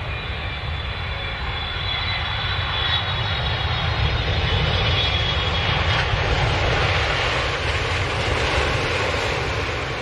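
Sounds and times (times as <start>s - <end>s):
jet airliner engine rumble: 0.0s - 10.0s
jet engine high whine: 0.0s - 10.0s.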